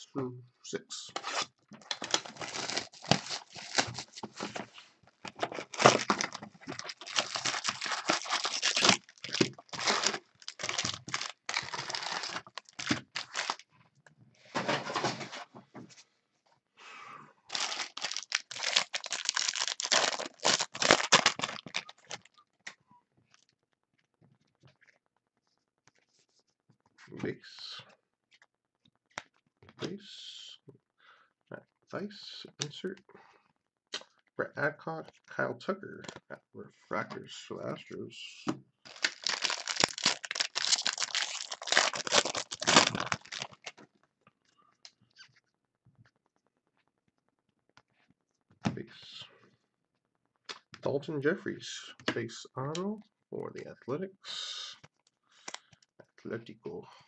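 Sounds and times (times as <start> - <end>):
tearing and crinkling packaging: 1.2 - 4.2, 5.4 - 13.7, 17.5 - 22.4, 38.9 - 43.8.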